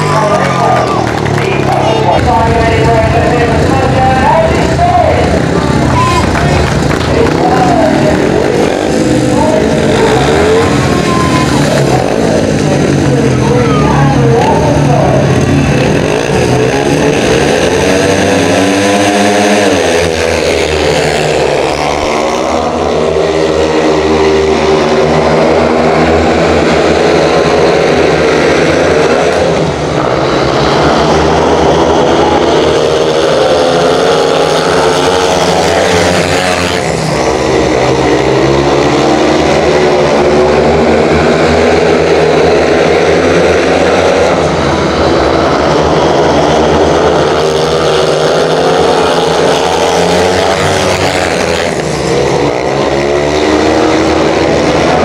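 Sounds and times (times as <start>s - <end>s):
speedway motorcycles racing: 0.0s - 55.0s.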